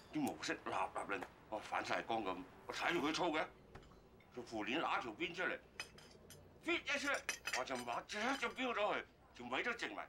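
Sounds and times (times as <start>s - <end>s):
man talking: 0.1s - 3.5s
spoon clinking on glass: 7.0s - 8.6s.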